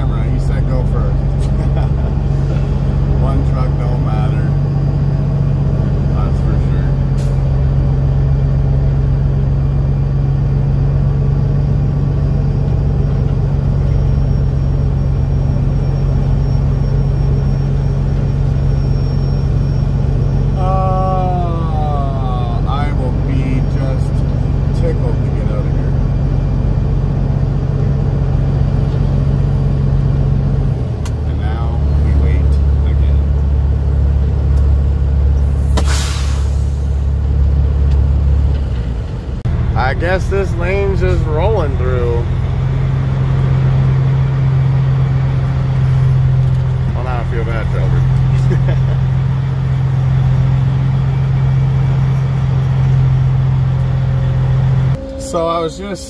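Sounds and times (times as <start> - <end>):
diesel truck engine idling: 0.0 - 56.0.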